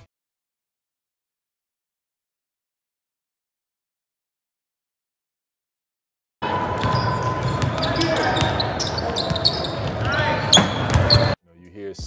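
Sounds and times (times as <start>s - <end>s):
people's voices in a hall: 6.4s - 12.0s
basketballs bouncing on gym floor: 6.7s - 11.4s.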